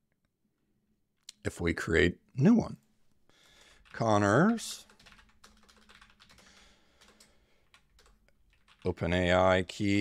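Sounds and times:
computer keyboard typing: 3.6 - 9.2.

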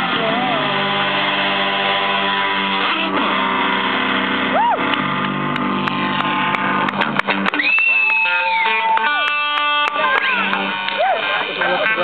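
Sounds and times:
electric guitars ringing chord: 0.0 - 7.6, 8.3 - 12.0.

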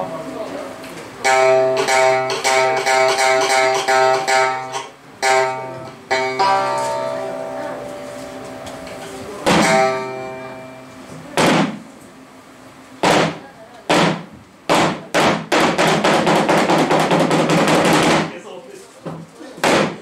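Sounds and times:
struck string instrument hits: 1.2 - 11.9.

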